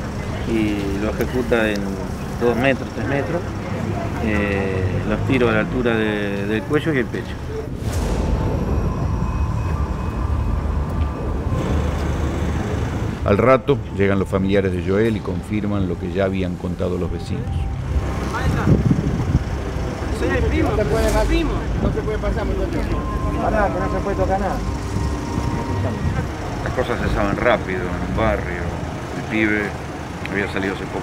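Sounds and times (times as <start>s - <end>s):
man talking: 0.4s - 3.5s, 4.2s - 7.4s, 13.2s - 18.9s, 25.8s - 31.0s
low rumble with hum tones: 7.3s - 30.9s.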